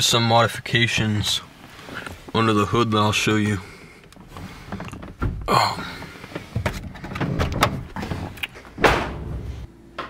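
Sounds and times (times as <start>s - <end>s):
car door thump: 8.8s - 9.6s.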